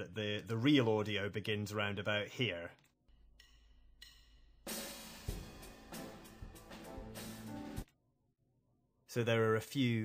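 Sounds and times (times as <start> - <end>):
drumstick clicks: 3.4 - 4.4
band playing drums and cymbals: 4.7 - 7.8.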